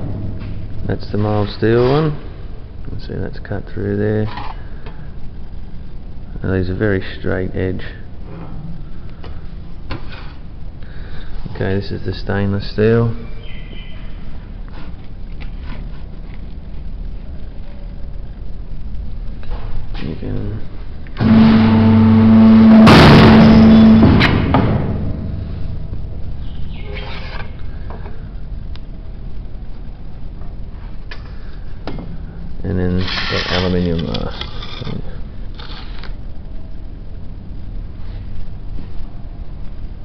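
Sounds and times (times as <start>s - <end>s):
steady low hum: 0.0s - 40.0s
blade shearing metal sheet: 21.2s - 24.4s, 33.0s - 33.8s
metal sheet sliding on steel bed: 33.0s - 33.8s.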